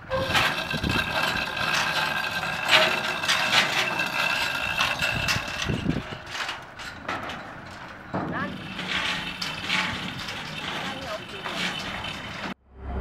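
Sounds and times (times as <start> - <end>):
metallic rattle: 0.0 - 12.6.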